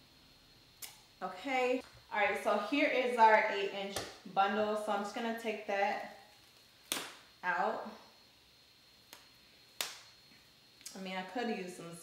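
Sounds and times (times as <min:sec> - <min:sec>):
sharp snaps of packaging: 0:06.9 - 0:07.2, 0:09.1 - 0:10.1.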